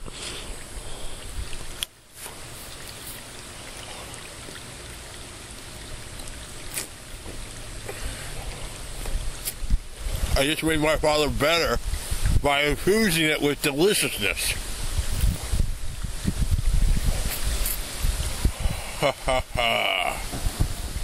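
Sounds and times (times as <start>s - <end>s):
pool water lapping: 0.0s - 21.0s
low wind rumble: 7.6s - 12.9s, 14.5s - 19.6s
wind on microphone: 8.4s - 13.0s, 14.5s - 21.0s.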